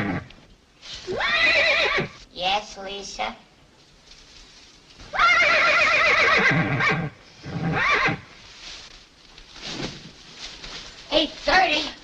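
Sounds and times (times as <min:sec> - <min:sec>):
horse whinnying: 0:01.1 - 0:02.2, 0:05.1 - 0:08.2.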